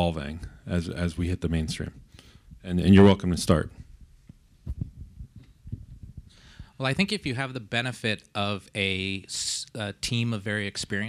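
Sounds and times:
microphone handling thumps: 3.7 - 6.8.

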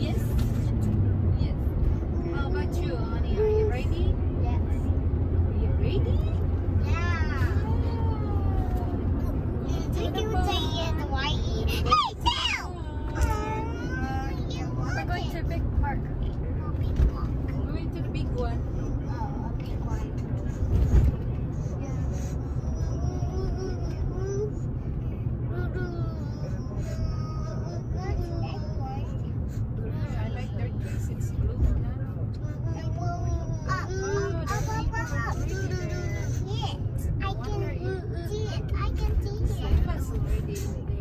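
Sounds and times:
car road and engine rumble: 0.0 - 41.0.

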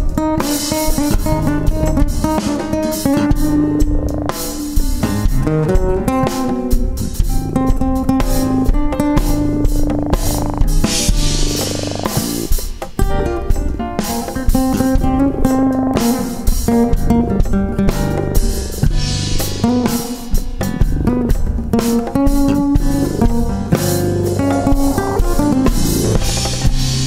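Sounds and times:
drum kit: 0.0 - 27.0
jazz guitar: 0.0 - 27.0
bass line: 0.8 - 15.9, 22.4 - 27.0.

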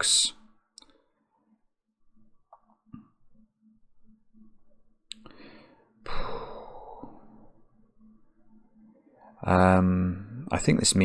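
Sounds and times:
man sighing: 6.0 - 7.2.

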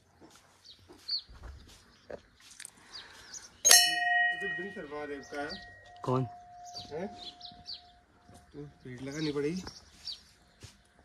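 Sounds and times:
brass temple bell ringing: 3.7 - 7.9.

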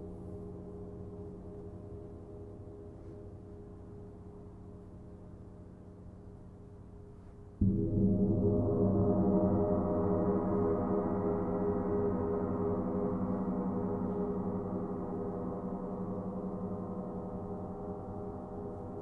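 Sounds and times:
large gong ringing: 7.6 - 19.0.

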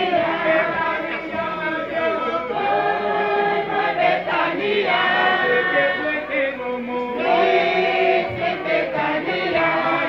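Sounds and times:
group singing in chorus: 0.0 - 10.0.

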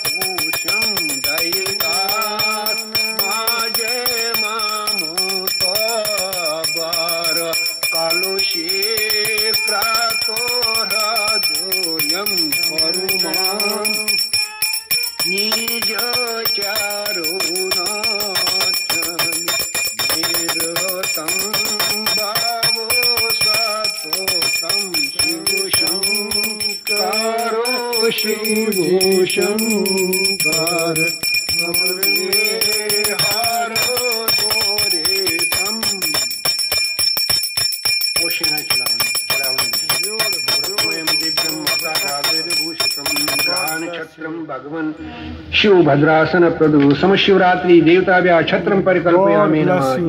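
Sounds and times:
brass bell ringing rapidly: 0.0 - 44.1
person chanting: 15.0 - 36.3.

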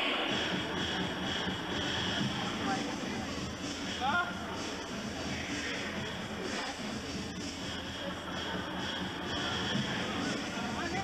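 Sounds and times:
indistinct background voices: 0.0 - 11.0
steady room noise rush: 0.0 - 11.0.

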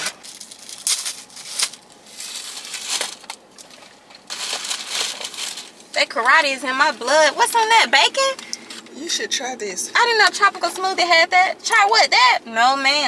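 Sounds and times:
paper wrapper crinkling: 0.0 - 8.9.

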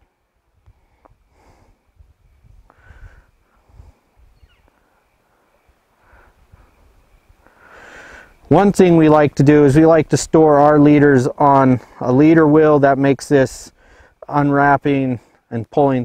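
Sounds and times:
faint breathing: 0.6 - 8.4, 13.7 - 14.2, 15.1 - 15.5.

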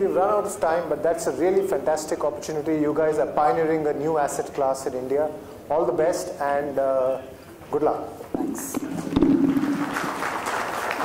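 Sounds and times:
audience applause: 9.4 - 11.0.

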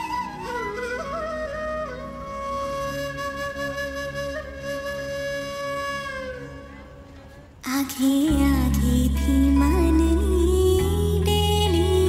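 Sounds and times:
flute long note: 0.0 - 7.2
soft low accompaniment: 0.0 - 12.0.

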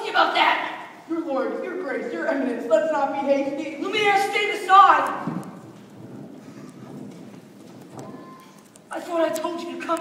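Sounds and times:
footsteps on wooden stage: 4.8 - 10.0.

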